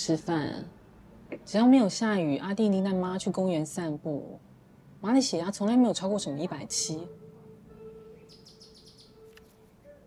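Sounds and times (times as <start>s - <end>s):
faint bird chirps: 7.1s - 10.0s.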